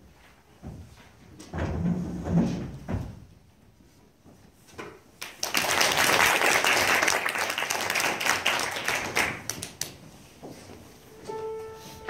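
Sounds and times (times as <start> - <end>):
audience applauding: 5.2 - 10.0.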